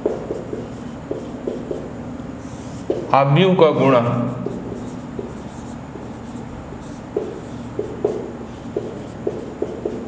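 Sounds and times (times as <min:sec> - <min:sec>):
marker pen squeaking on whiteboard: 0:00.0 - 0:03.1, 0:04.3 - 0:10.0.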